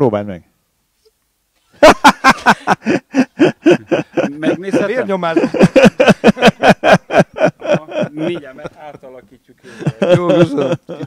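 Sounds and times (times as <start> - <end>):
man laughing heartily: 1.8 - 8.8, 9.7 - 11.0.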